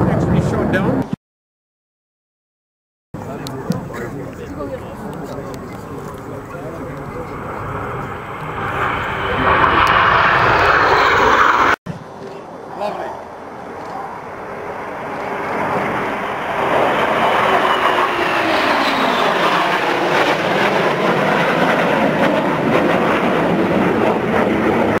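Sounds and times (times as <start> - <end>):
jet engines roaring: 3.2 - 11.8, 12.6 - 25.0
falling jet whine: 5.8 - 11.8, 14.3 - 25.0.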